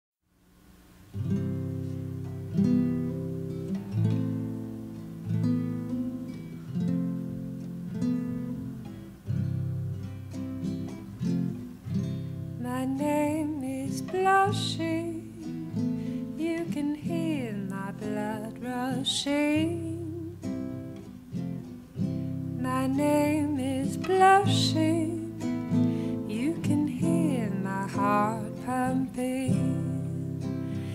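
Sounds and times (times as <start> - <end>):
acoustic guitar strumming: 1.0 - 30.9.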